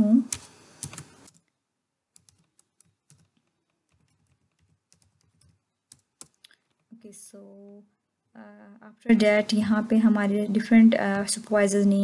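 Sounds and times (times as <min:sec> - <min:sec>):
soft computer keyboard clicks: 0:00.3 - 0:01.6, 0:02.2 - 0:06.9.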